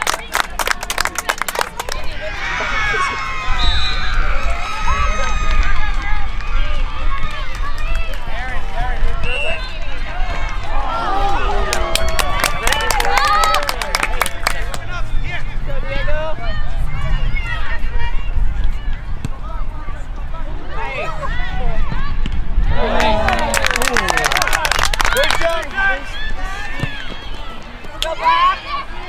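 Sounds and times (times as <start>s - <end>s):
sharp claps: 23.3s - 25.6s.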